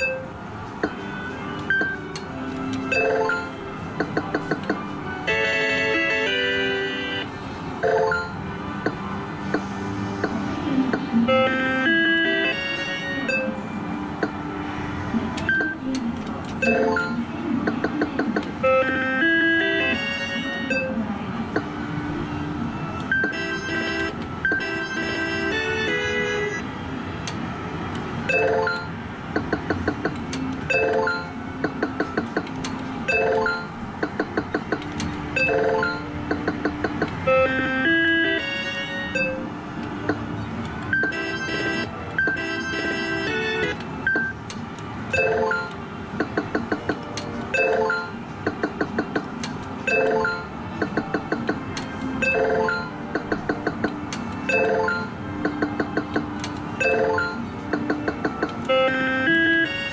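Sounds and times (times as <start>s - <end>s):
video poker machine beeps and jingles: 0.0s - 0.3s, 1.7s - 2.1s, 2.8s - 3.6s, 5.2s - 8.4s, 11.9s - 13.6s, 16.6s - 17.3s, 18.6s - 21.0s, 23.1s - 26.6s, 28.3s - 29.0s, 30.6s - 31.4s, 33.0s - 34.4s, 35.3s - 39.5s, 40.9s - 44.4s, 45.1s - 45.8s, 47.5s - 48.2s, 49.8s - 50.6s, 52.1s - 53.0s, 54.4s - 56.0s, 56.7s - 58.0s
arcade background noise: 0.0s - 59.9s.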